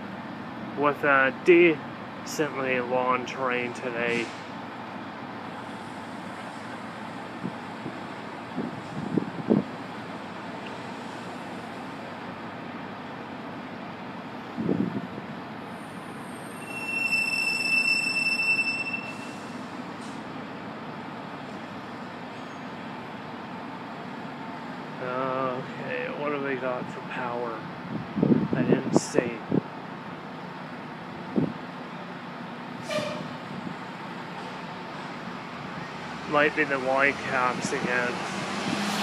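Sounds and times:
freight train rumble: 0.0s - 38.8s
high steady squeal: 15.8s - 19.6s.

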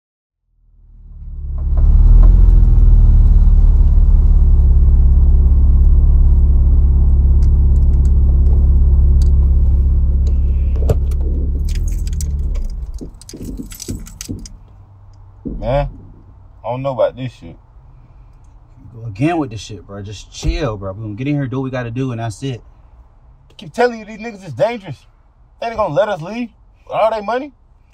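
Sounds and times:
car engine rumbling: 0.4s - 27.9s
keys jingling: 11.0s - 14.8s.

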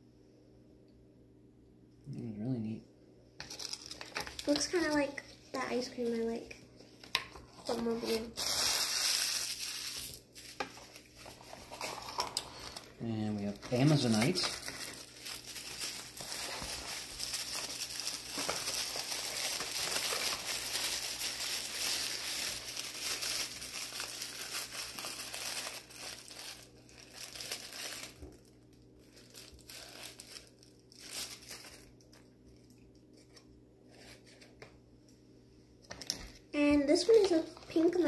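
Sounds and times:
paper wrapping crinkling: 3.4s - 6.4s, 7.6s - 33.4s, 36.0s - 38.0s.

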